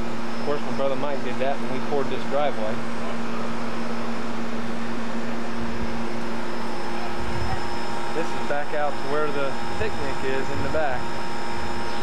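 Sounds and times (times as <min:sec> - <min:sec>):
steady noise with faint hum: 0:00.0 - 0:12.0.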